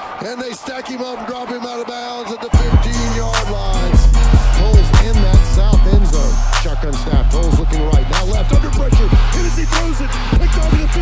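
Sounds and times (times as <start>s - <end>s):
stadium crowd noise: 0.0s - 11.0s
man talking: 0.2s - 11.0s.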